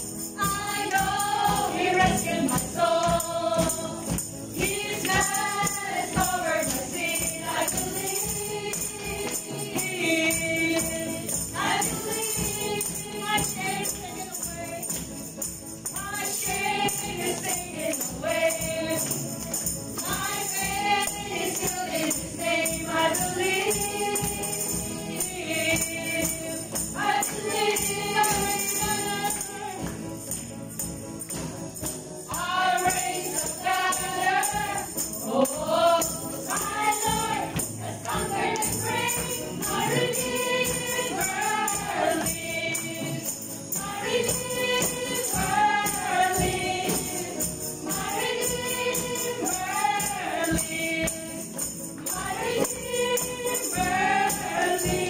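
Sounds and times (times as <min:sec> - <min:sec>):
women singing worship song: 0:00.0 - 0:30.9, 0:31.8 - 0:55.0
tambourines jingling: 0:00.0 - 0:55.0.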